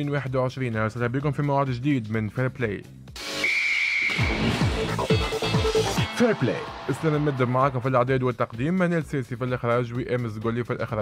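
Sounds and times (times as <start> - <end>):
high whistle-like tone: 3.2 - 4.9.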